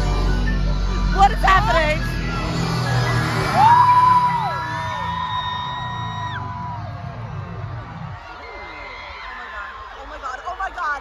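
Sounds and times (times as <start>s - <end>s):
loud music with deep bass: 0.0s - 8.4s
crowd screaming and whooping: 0.0s - 11.0s.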